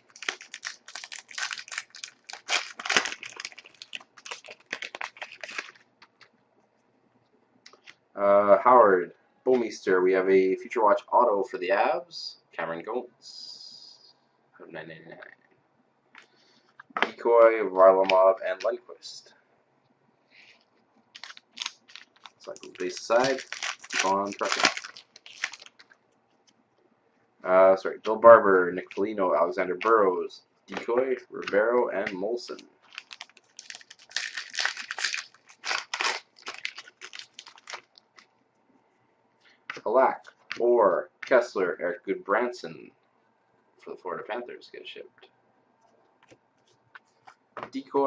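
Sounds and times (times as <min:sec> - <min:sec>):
cards rustling: 0:00.0 - 0:06.3, 0:21.2 - 0:26.0, 0:30.7 - 0:38.3
foil wrapper crinkling and tearing: 0:00.0 - 0:06.3, 0:21.1 - 0:26.0, 0:31.4 - 0:38.3.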